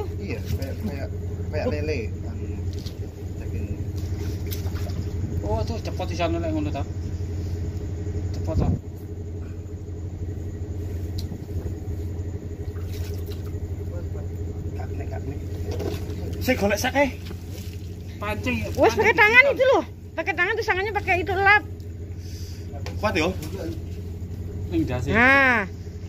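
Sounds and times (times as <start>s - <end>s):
engine humming: 0.0s - 26.0s
voices: 0.0s - 26.0s.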